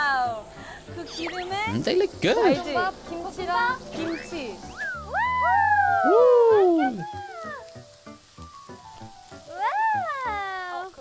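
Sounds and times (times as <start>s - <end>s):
pork sizzling on a griddle: 0.0s - 11.0s
high voice exclaiming: 5.1s - 7.7s, 9.5s - 10.8s.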